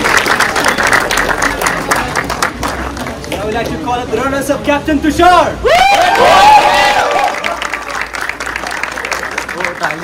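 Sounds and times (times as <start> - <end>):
people applauding: 0.0 - 3.7, 5.7 - 10.0.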